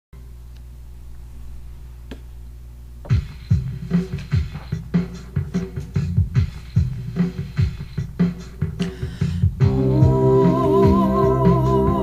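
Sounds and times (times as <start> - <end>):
drum machine beat: 3.0 - 12.0
low hum: 9.4 - 12.0.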